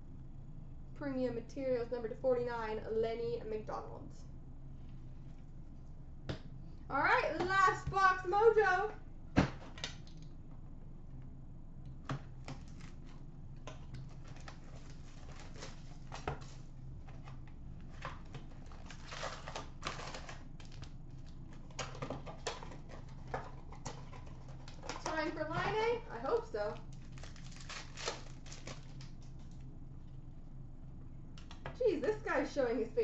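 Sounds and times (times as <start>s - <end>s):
steady low hum: 0.0s - 33.0s
cards and packs rustling: 14.0s - 29.6s
person speaking: 25.0s - 26.8s.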